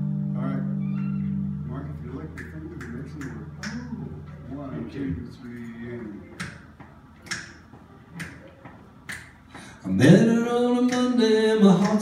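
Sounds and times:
finger snaps: 2.3 - 3.8, 7.2 - 7.6, 8.2 - 9.7
man singing: 9.8 - 12.0.

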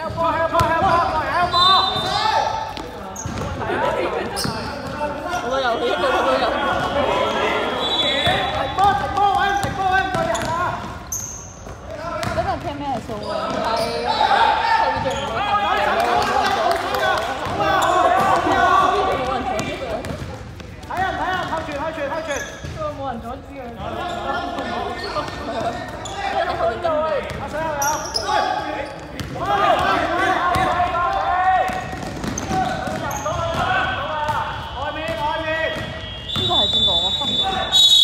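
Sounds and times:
basketball bouncing on hall floor: 0.0 - 5.6, 8.2 - 14.0, 17.2 - 23.4, 24.6 - 28.3, 28.9 - 37.4
players shouting in echoing hall: 0.0 - 38.0.

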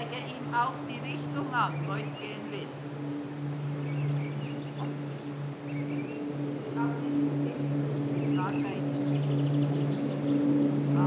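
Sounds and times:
small birds chirping: 0.0 - 11.0
steady low hum: 0.0 - 11.0.

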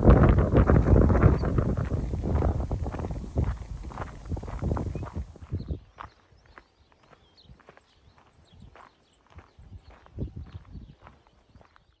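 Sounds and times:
wind rumble on microphone: 0.0 - 6.6, 8.4 - 11.8
high bird chirps: 0.9 - 10.0.

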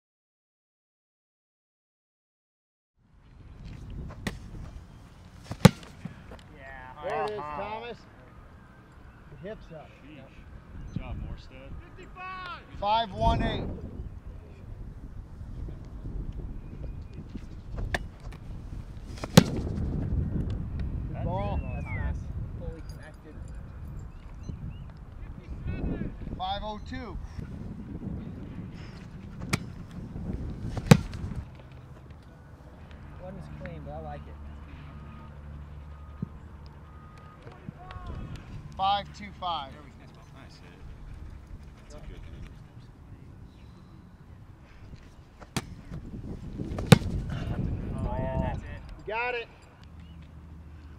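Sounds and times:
wind rumbling on microphone: 3.2 - 5.0, 13.1 - 31.6, 44.2 - 49.1
foot kicking ball thud: 5.4 - 6.2, 19.1 - 19.8, 30.7 - 31.4, 45.4 - 46.0, 46.7 - 47.3
ball slapping into hands: 5.4 - 6.4, 19.1 - 19.8, 29.4 - 29.7, 30.7 - 31.4, 45.4 - 46.0, 46.7 - 47.2.

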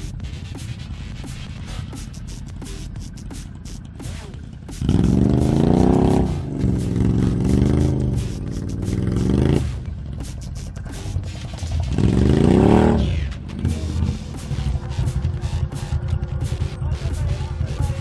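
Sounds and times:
music: 0.0 - 18.0
atv engine revving: 1.2 - 18.0.

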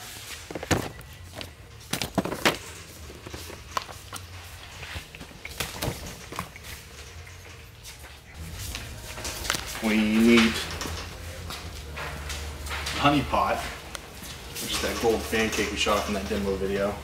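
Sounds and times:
boxes knocking in metal carts: 0.5 - 4.0.

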